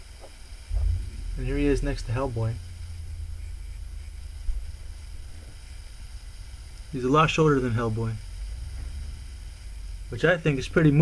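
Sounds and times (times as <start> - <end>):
low room rumble: 0.0 - 11.0
soft thump: 0.7 - 1.3.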